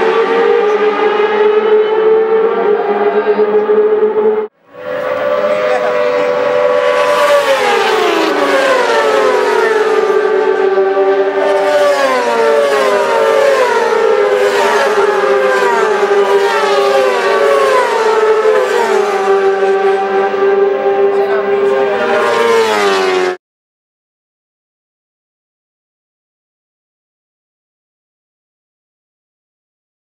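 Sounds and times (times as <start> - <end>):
motorcycles passing at speed: 0.0 - 23.4
steady engine drone: 0.0 - 23.4.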